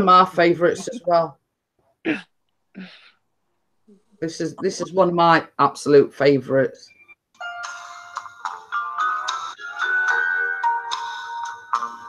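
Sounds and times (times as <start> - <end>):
recorded song from phone speaker: 6.9 - 12.0.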